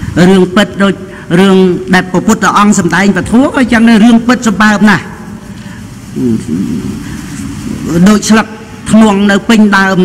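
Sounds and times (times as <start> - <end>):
man murmuring softly: 6.1 - 8.0.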